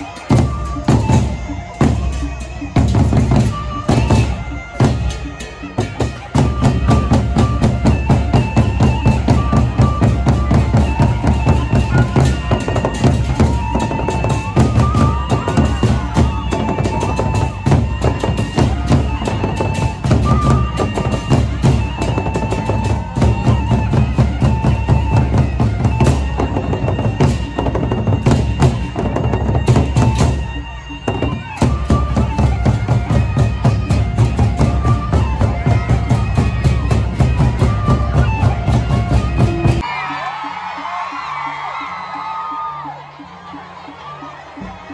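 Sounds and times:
barrel drums beaten fast: 0.2 - 39.8.

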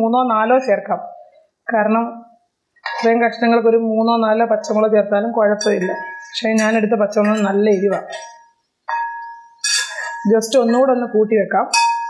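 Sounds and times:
woman speaking: 0.0 - 2.2, 2.9 - 8.2, 10.0 - 11.7
metal spatula scraping a pan: 9.6 - 10.3.

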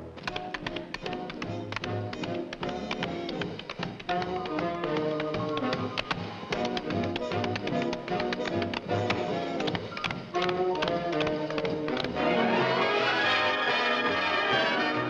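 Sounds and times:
orchestral film music: 0.0 - 15.0
sharp taps: 0.2 - 12.2.

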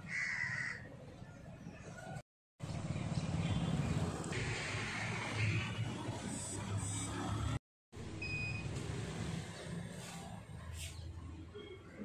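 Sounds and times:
thermometer beep: 8.2 - 8.7.

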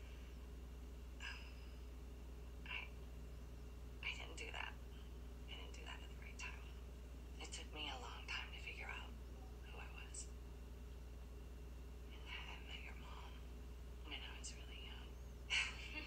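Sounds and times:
steady low hum: 0.0 - 16.0
faint tv dialogue: 4.0 - 10.4, 12.0 - 16.0.

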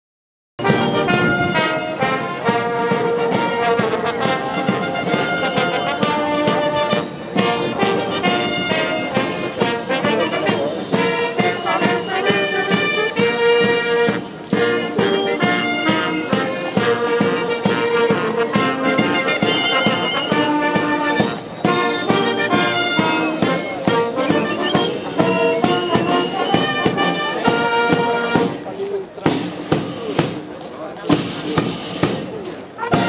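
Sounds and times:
military brass band marching: 0.6 - 33.0.

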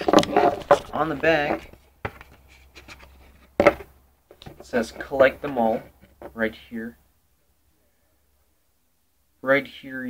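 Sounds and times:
cardboard rubbing and tapping: 0.0 - 6.4.

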